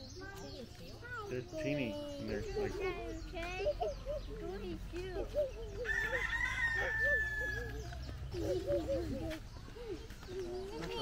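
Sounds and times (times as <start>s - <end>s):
rooster crowing: 5.8s - 7.9s.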